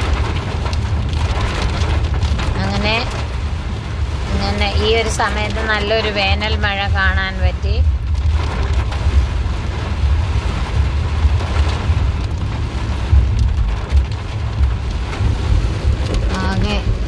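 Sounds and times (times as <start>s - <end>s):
car rumble: 0.0s - 17.0s
heavy rain on car windscreen: 0.0s - 17.0s.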